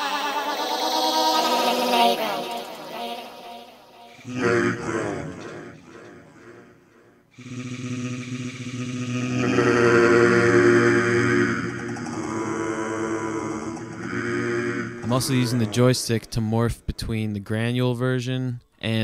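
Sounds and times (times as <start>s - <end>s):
synth voice-like tone: 0.0s - 6.2s, 7.4s - 16.9s.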